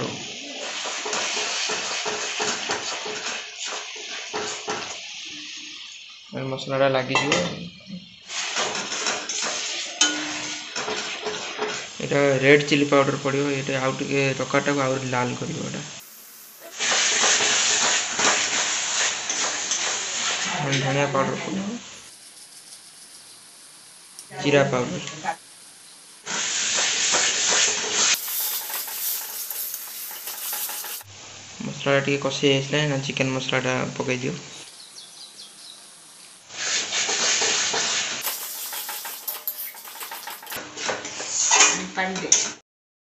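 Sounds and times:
gravy sizzling: 0:00.0 - 0:31.6, 0:34.6 - 0:41.4
spoon scraping in a steel pan: 0:27.6 - 0:31.1, 0:37.1 - 0:41.8
ladle stirring: 0:28.2 - 0:31.1, 0:38.2 - 0:40.6.

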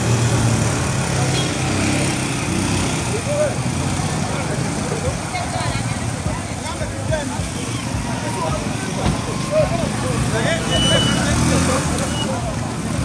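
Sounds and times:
road traffic noise: 0:00.0 - 0:13.0
vehicle engines running: 0:00.0 - 0:13.0
voices talking and calling out: 0:00.6 - 0:13.0.

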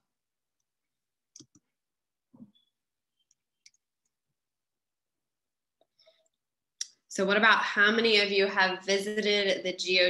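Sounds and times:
computer mouse clicks: 0:01.3 - 0:01.7, 0:03.2 - 0:04.2.

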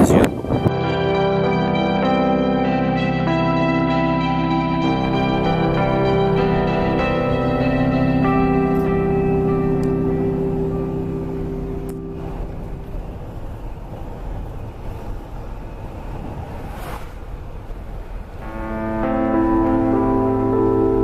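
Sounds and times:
background music: 0:00.0 - 0:13.3, 0:18.4 - 0:21.0
car road and engine noise: 0:00.0 - 0:21.0.

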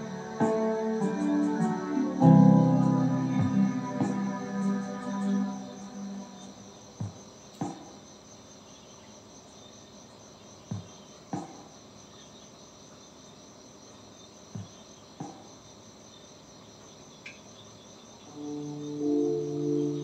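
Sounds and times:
insects chirping: 0:00.0 - 0:20.0.

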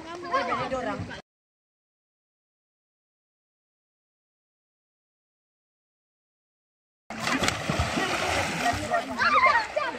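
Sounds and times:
water splashing: 0:07.1 - 0:09.9
sharp smack on water: 0:07.2 - 0:08.3.

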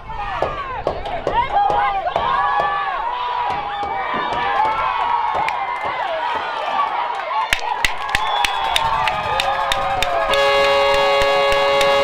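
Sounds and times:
crowd voices and shouts: 0:00.0 - 0:11.4
sharp claps: 0:04.3 - 0:12.0
stadium horn blast: 0:10.3 - 0:12.0.

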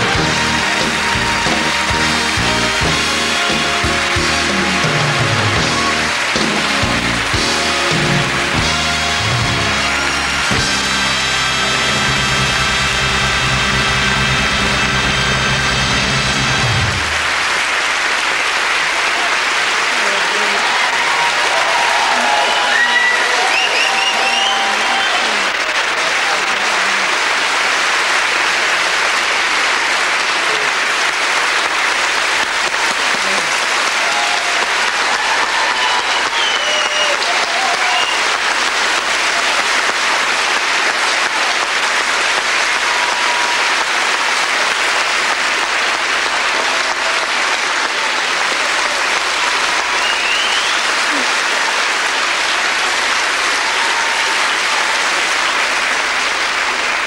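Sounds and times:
large audience applauding: 0:00.0 - 0:57.0.

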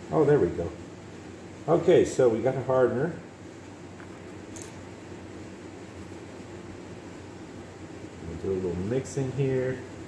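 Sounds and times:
fan running: 0:00.0 - 0:10.0.

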